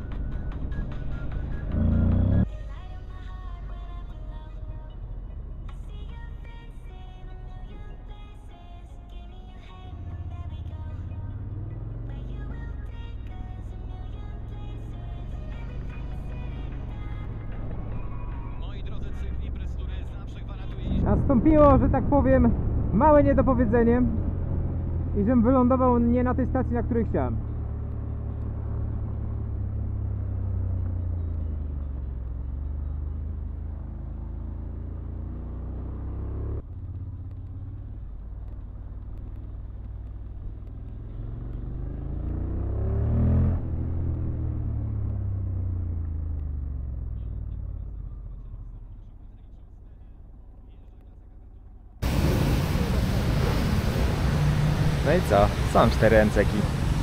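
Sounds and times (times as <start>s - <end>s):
muffled motorcycle engine: 0.0s - 57.0s.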